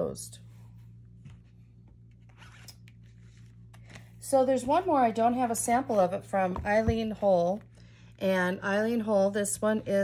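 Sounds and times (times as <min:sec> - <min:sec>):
steady low hum: 0:00.0 - 0:10.0
journal rustling and scraping: 0:01.2 - 0:04.1.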